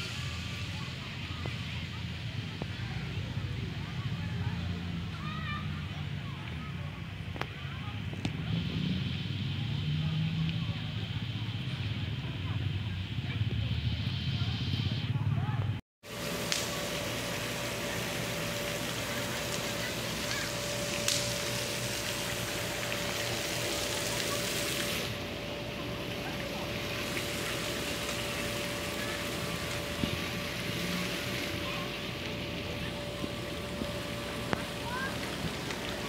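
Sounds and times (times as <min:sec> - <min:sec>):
outdoor background hiss: 0:16.0 - 0:36.0.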